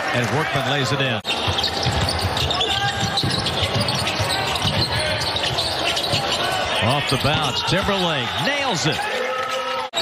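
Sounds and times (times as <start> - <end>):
players' voices: 0.0 - 10.0
sneakers squeaking: 0.5 - 8.7
basketball dribbling on hardwood: 1.3 - 6.4.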